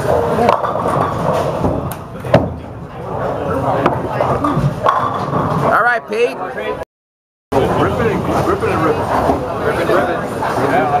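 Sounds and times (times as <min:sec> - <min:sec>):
bowling balls rolling on lanes: 0:00.0 - 0:06.1, 0:07.6 - 0:11.0
background chatter: 0:02.0 - 0:06.8, 0:07.6 - 0:11.0.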